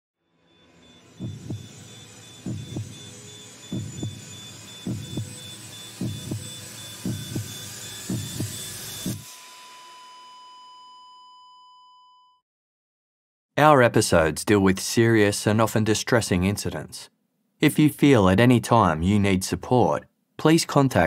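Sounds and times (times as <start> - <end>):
held ringing tone: 0.3 - 12.4
heartbeat thumps: 1.2 - 9.2.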